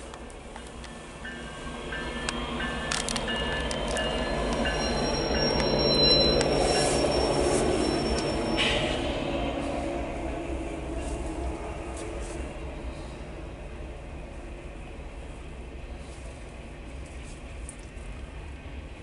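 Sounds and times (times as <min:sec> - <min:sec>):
diesel locomotive engine rumble: 0:00.0 - 0:19.0
wheels squealing on rail: 0:00.8 - 0:10.2.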